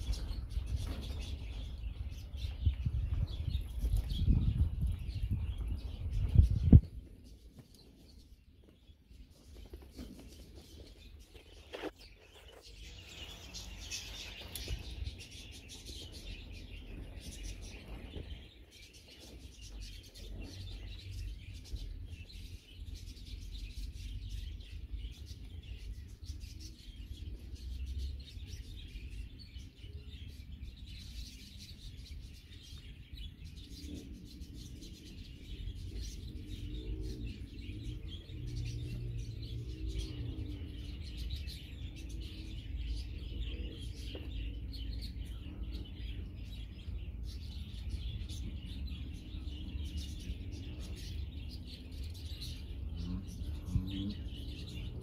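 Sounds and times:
steady low rumble: 0.0s - 7.5s
small birds chirping: 0.0s - 55.0s.

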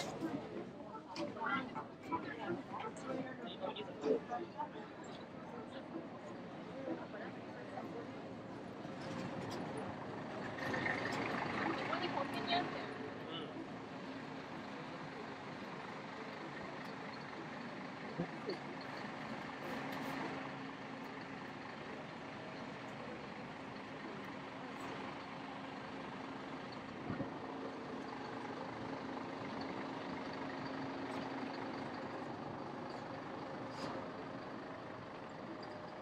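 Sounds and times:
bus engine idling: 0.0s - 36.0s
outdoor noise: 0.0s - 36.0s.

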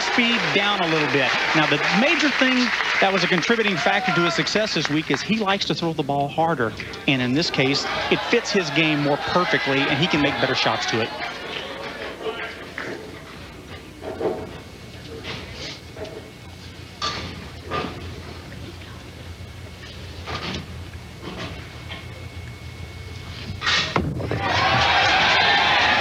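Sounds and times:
crowd cheering and applause: 0.0s - 5.5s, 7.3s - 12.8s, 24.3s - 26.0s
murmur of audience: 6.4s - 20.6s
bowling ball rolling: 23.5s - 25.9s
bowling pins crashing: 23.6s - 25.7s.

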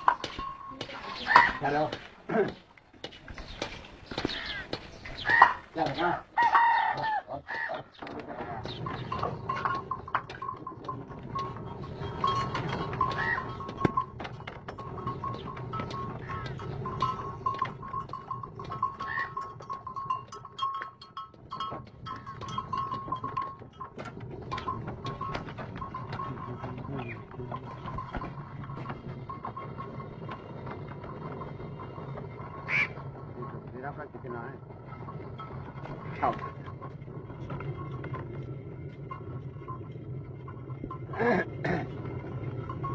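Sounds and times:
millstone rumbling: 0.0s - 42.9s.

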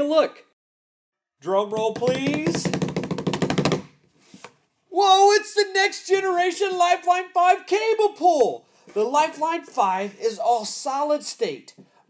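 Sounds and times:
drum roll: 1.7s - 3.9s.

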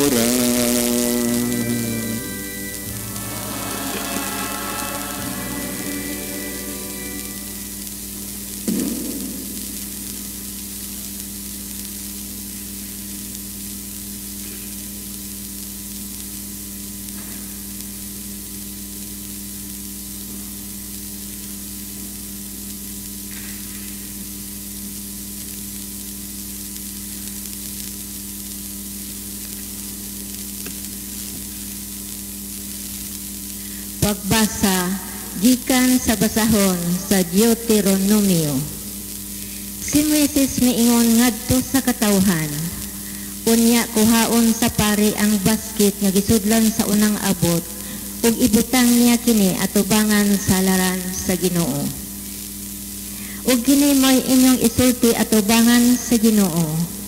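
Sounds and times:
even hiss: 0.0s - 15.4s, 29.5s - 50.4s, 51.1s - 57.0s
low electrical hum: 0.0s - 57.0s
sung music: 0.1s - 8.2s.

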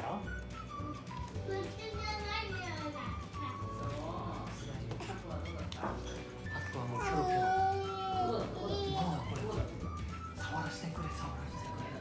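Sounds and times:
background music: 0.0s - 12.0s
infant babbling and squealing: 6.6s - 9.6s
infant crying: 6.8s - 9.2s.

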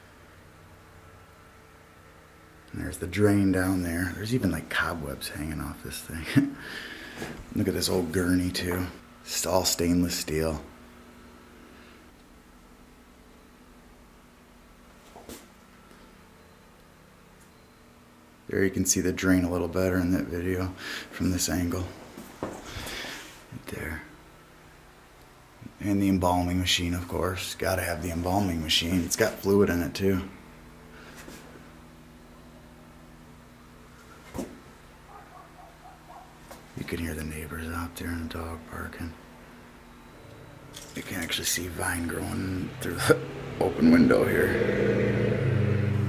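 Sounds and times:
faint low hum: 0.0s - 46.0s
dog barking: 35.1s - 36.4s.

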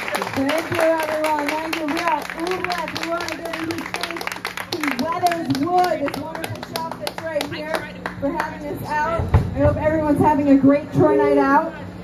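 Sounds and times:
hands clapping in rhythm: 0.0s - 8.6s.

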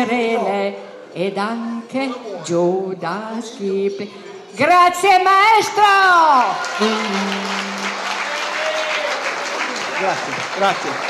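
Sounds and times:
audience applauding: 6.4s - 11.0s.

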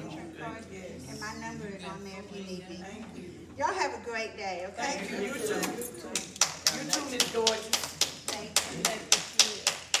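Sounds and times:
hand clapping: 5.6s - 10.0s.

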